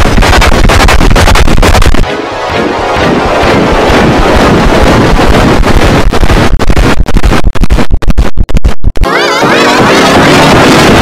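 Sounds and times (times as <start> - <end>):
harsh distorted noise: 0.0 - 11.0.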